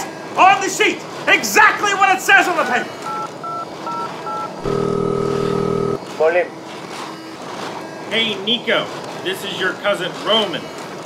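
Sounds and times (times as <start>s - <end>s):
touch-tone dialing beeps: 3.0s - 6.0s
steady phone ringing tone: 3.1s - 6.0s.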